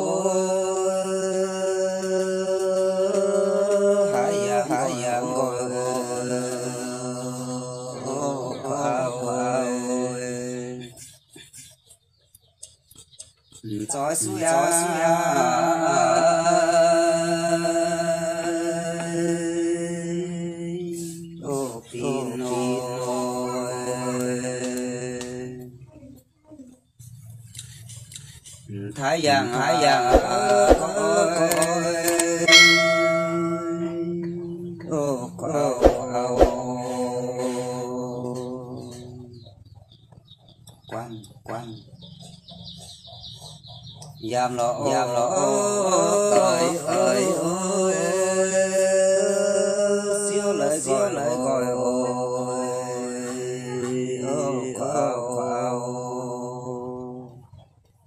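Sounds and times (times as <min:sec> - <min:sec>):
person singing folk song: 0:00.0 - 0:11.5, 0:13.5 - 0:26.1, 0:28.6 - 0:39.6, 0:44.1 - 0:57.6
held note: 0:32.5 - 0:34.0
bell-like chime: 0:32.5 - 0:34.1
low drone: 0:32.5 - 0:34.2.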